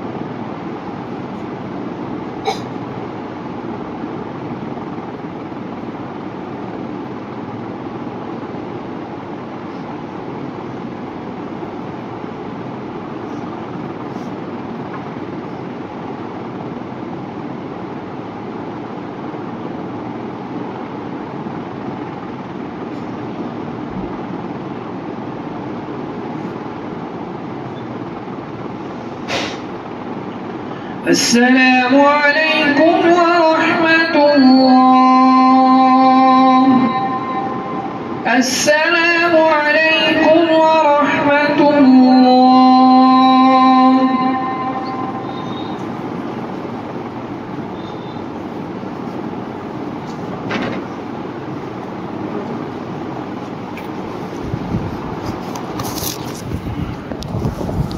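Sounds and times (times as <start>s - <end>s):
low hum: 31.8s - 57.9s.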